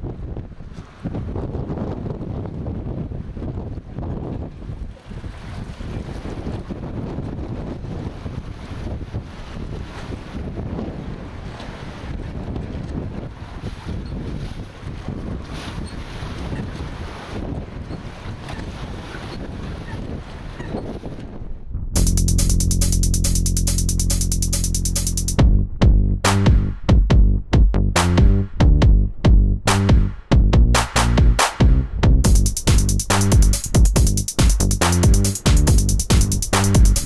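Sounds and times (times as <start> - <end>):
wind buffeting microphone: 0.0 - 22.0
river water lapping: 4.6 - 21.2.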